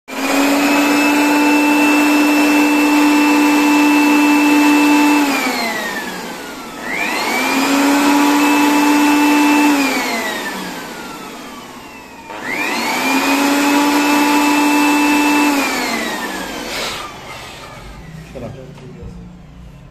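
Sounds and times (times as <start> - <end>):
electric air blower motor whine: 0.1 - 18.5.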